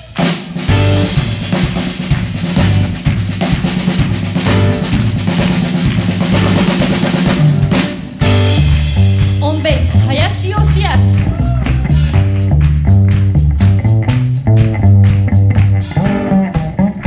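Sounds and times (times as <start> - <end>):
band playing: 0.0 - 17.0
bass notes: 0.0 - 17.0
drum kit played hard: 0.0 - 17.0.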